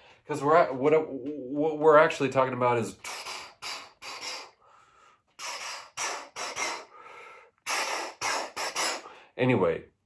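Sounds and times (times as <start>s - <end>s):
man making hissing puffs: 2.9s - 9.3s.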